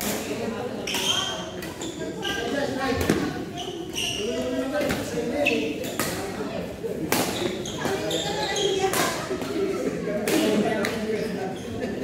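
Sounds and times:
voices in sports hall: 0:00.0 - 0:12.0.

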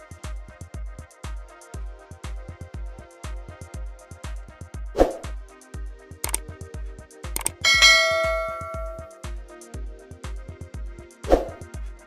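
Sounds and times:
sharp click: 0:06.2 - 0:06.4, 0:07.4 - 0:09.2
bell-like notification chime: 0:07.5 - 0:09.2.

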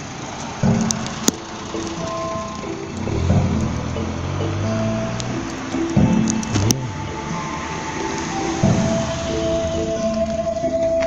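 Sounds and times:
mechanical clock melody: 0:00.0 - 0:10.0.

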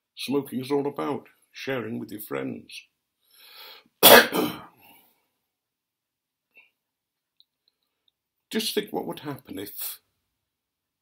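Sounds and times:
man coughing: 0:04.0 - 0:04.7.

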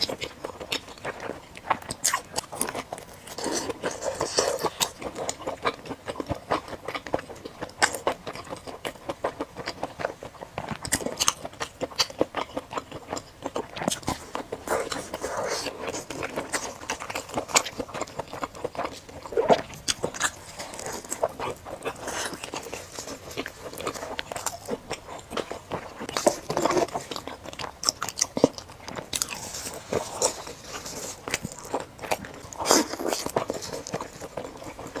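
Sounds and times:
chewing crunchy fried food: 0:00.0 - 0:35.0.

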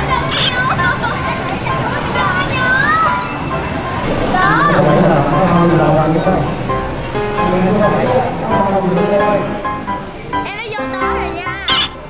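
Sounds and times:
child's high-pitched warbling voice: 0:00.0 - 0:03.4, 0:04.3 - 0:05.2, 0:10.4 - 0:12.0
background music: 0:00.0 - 0:12.0.

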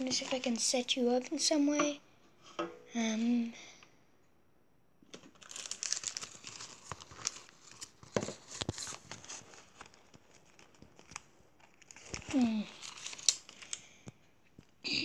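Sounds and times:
crinkling and rustling: 0:00.0 - 0:01.5, 0:05.0 - 0:14.9.

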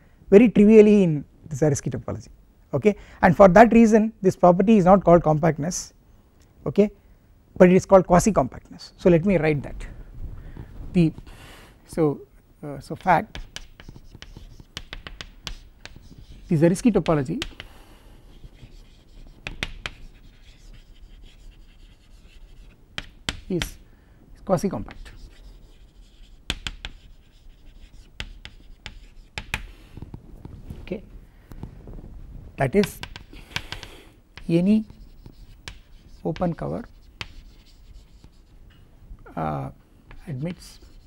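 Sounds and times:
chalk scratching on chalkboard: 0:12.9 - 0:23.8, 0:24.8 - 0:30.0, 0:32.8 - 0:38.6, 0:40.1 - 0:41.0
chalk tapping on chalkboard: 0:13.0 - 0:23.8, 0:24.9 - 0:30.2, 0:32.8 - 0:38.5, 0:40.1 - 0:41.0.

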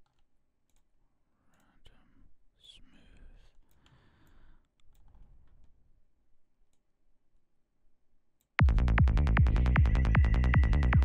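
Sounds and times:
soft whispering: 0:01.3 - 0:04.6
computer mouse clicks: 0:03.5 - 0:05.8.

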